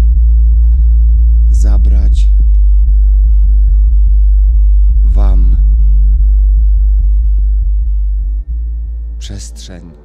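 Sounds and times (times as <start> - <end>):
deep electronic bass drone: 0.0 - 10.0.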